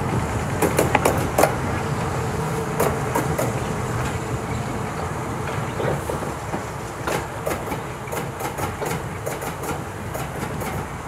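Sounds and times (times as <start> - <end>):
clicks over rail joints: 0.0 - 1.6, 5.4 - 11.0
steel wheels rumbling on track: 0.0 - 11.0.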